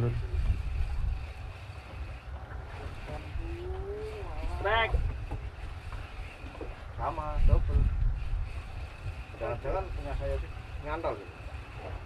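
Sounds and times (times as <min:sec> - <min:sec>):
wind and open water rumble: 0:00.0 - 0:12.0.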